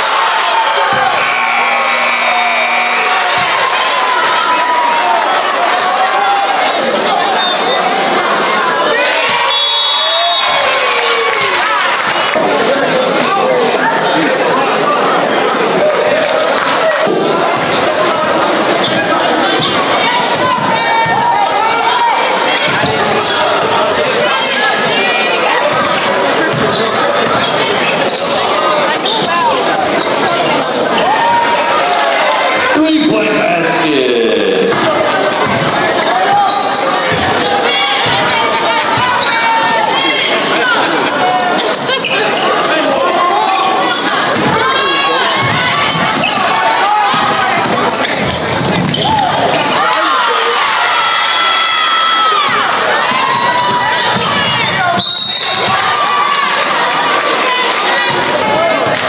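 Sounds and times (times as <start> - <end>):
voices of players and spectators: 0.0 - 59.0.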